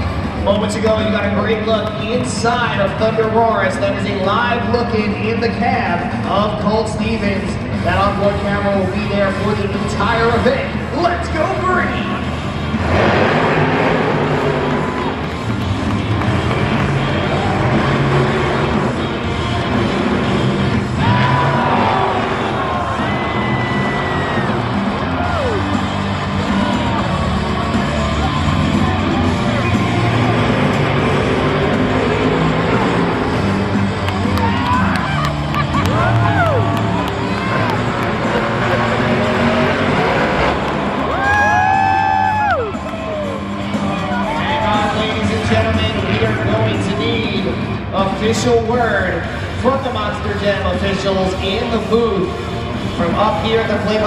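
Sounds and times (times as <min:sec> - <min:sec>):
loud stadium music: 0:00.0 - 0:54.0
monster truck engines revving: 0:00.0 - 0:54.0
crowd cheering: 0:12.8 - 0:45.4.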